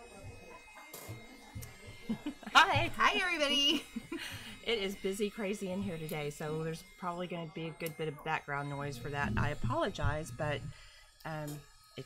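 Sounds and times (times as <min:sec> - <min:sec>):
busy shop background noise: 0:00.0 - 0:12.0
soft low thumps: 0:01.6 - 0:04.6, 0:05.7 - 0:06.4, 0:09.0 - 0:10.8.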